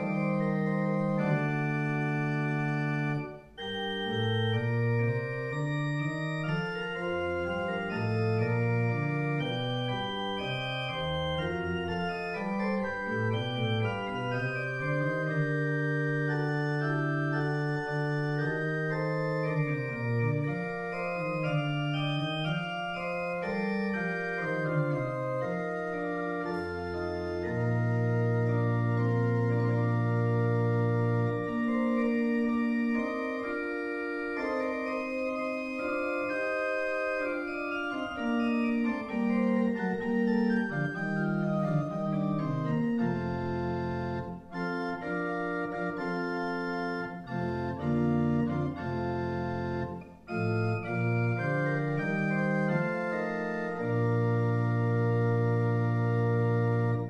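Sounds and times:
organ playing: 0:00.0 - 0:57.0.

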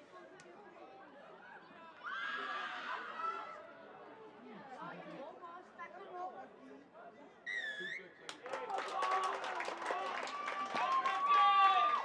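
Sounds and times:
loud shout: 0:08.5 - 0:12.0.

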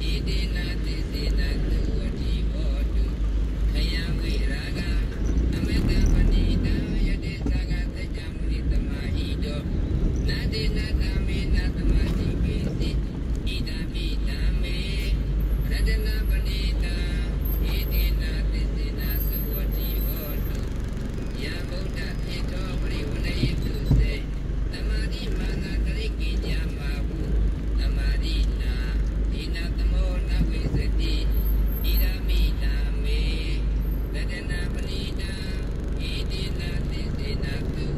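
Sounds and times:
car engine and tyres rumbling: 0:00.0 - 0:37.9.

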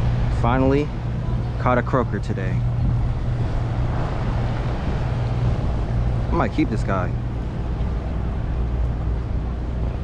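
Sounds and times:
boat engine droning: 0:00.0 - 0:10.0
water wash: 0:00.0 - 0:10.0.

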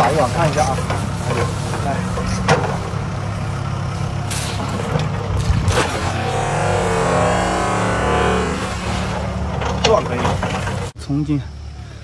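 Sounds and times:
steady low hum: 0:06.0 - 0:09.5.

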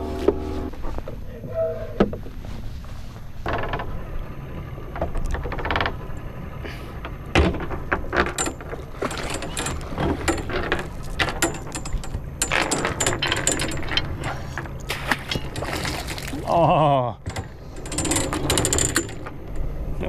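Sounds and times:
anchor chain clanking: 0:03.4 - 0:16.5, 0:17.2 - 0:19.8.

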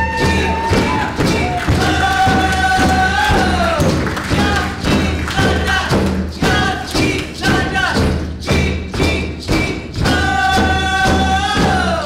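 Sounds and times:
drum beaten steadily: 0:00.0 - 0:12.0
group singing: 0:00.0 - 0:12.0.

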